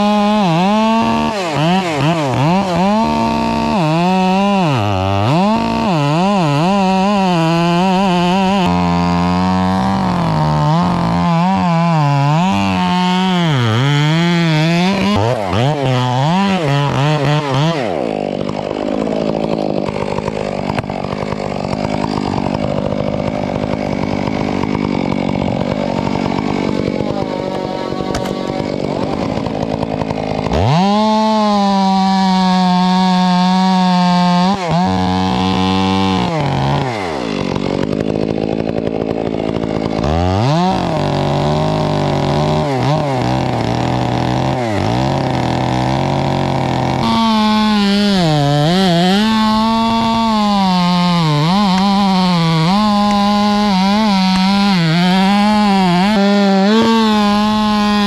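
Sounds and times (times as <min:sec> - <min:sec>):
chainsaw cutting wood: 0:00.0 - 0:58.0.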